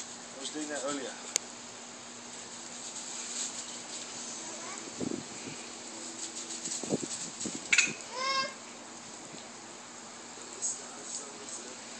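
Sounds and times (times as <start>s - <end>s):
lawn sprinkler hissing: 0.0s - 11.9s
toddler high-pitched vocal sound: 8.0s - 8.6s.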